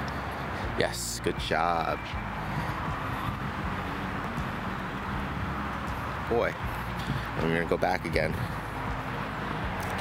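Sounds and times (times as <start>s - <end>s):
outdoor background rumble: 2.2s - 10.0s.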